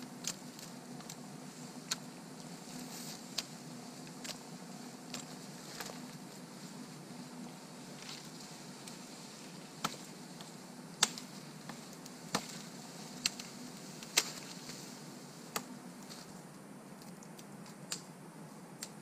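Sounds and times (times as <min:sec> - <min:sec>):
hatchet chopping wood: 0:12.3 - 0:12.6.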